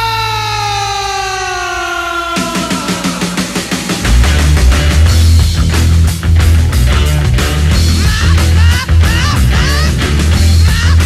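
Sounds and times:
rock song on radio: 0:00.0 - 0:11.0.

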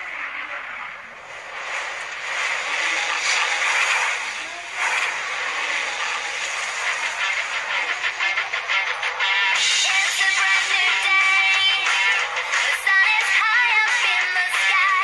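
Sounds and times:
fire rushing noise: 0:00.0 - 0:13.6.

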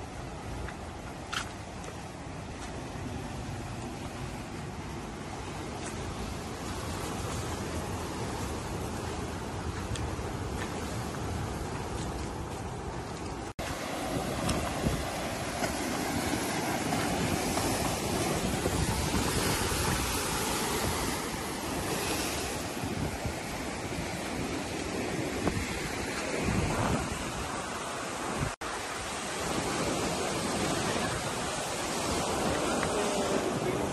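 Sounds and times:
wind buffeting microphone: 0:03.2 - 0:33.9
surf breaking on rocks: 0:13.5 - 0:33.9.

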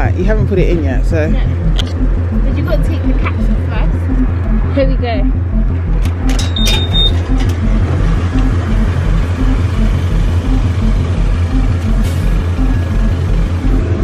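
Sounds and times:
air compressor throbbing: 0:00.0 - 0:14.0
short high machine beep: 0:06.2 - 0:08.7.

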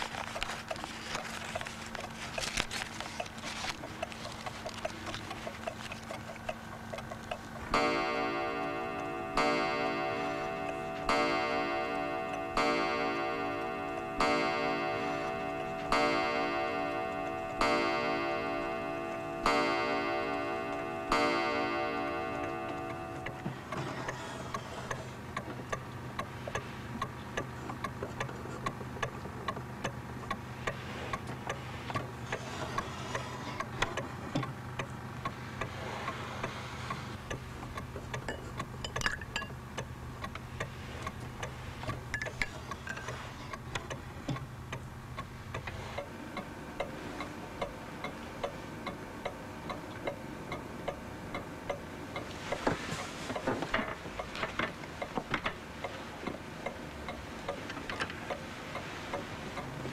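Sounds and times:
clock striking: 0:00.0 - 0:35.8, 0:36.4 - 0:58.5
clock ticking: 0:00.0 - 0:59.9.

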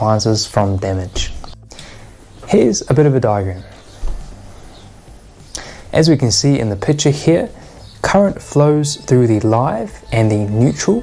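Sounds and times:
man's voice: 0:02.5 - 0:03.7, 0:05.9 - 0:11.0.

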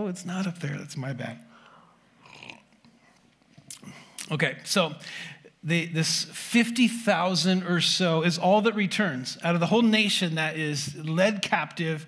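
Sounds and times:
breathing: 0:01.4 - 0:02.2, 0:05.0 - 0:05.5
man sipping: 0:02.1 - 0:04.3.

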